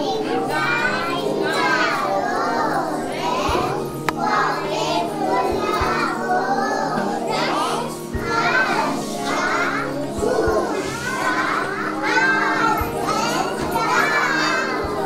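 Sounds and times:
background music: 0:00.0 - 0:15.0
children calling out and chattering: 0:00.0 - 0:15.0.

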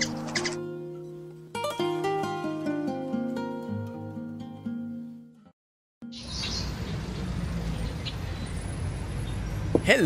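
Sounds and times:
road noise: 0:06.0 - 0:10.0.

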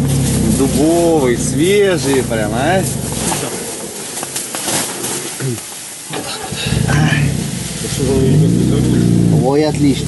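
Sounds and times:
faint crackles: 0:00.1 - 0:09.0.

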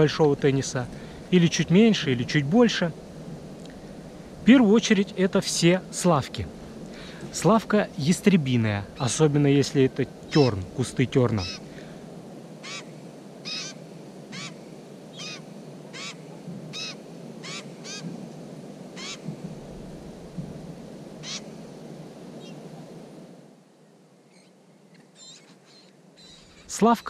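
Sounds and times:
low steady background noise: 0:00.0 - 0:27.0
bird nasal calls: 0:08.9 - 0:12.0, 0:12.6 - 0:18.1, 0:18.9 - 0:19.4, 0:21.2 - 0:21.7, 0:22.4 - 0:22.7, 0:24.3 - 0:27.0.

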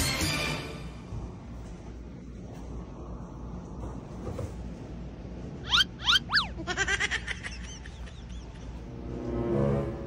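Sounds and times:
swooping high chirps: 0:05.6 - 0:06.6.

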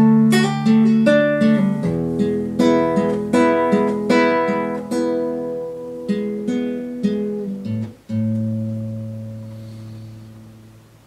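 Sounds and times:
classical guitar plucked notes: 0:00.0 - 0:11.0.

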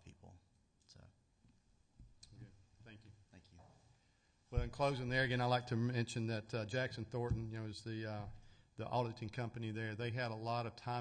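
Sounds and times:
man speaking: 0:04.6 - 0:11.0.

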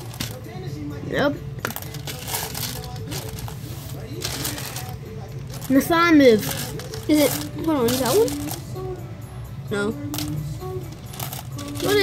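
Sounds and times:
jelly beans clicking and rattling: 0:00.0 - 0:00.4, 0:01.6 - 0:08.7, 0:10.1 - 0:12.0.

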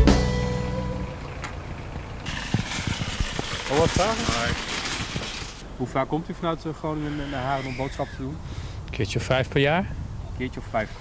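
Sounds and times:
low traffic hum: 0:00.0 - 0:11.0.

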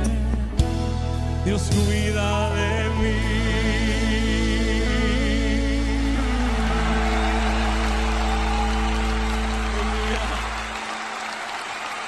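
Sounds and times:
audience applause: 0:06.0 - 0:12.0.

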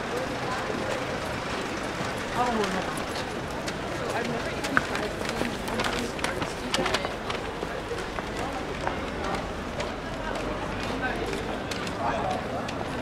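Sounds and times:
people talking indistinctly: 0:00.0 - 0:13.0
footsteps on pavement: 0:02.0 - 0:13.0.

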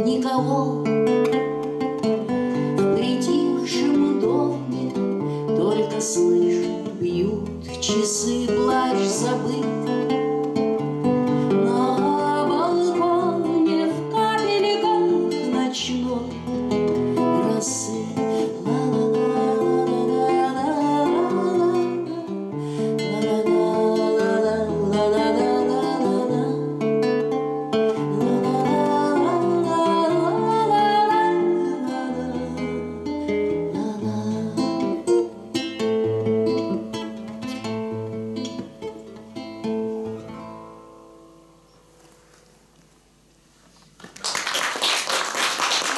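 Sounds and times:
nylon-string guitar playing: 0:00.0 - 0:42.6.

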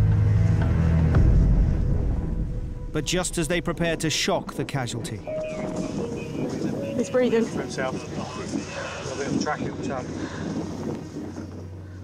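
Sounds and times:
wind on microphone: 0:05.3 - 0:12.0.

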